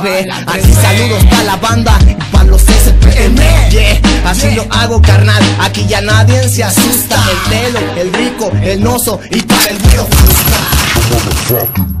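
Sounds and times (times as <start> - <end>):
low bass line: 0.7 - 7.8.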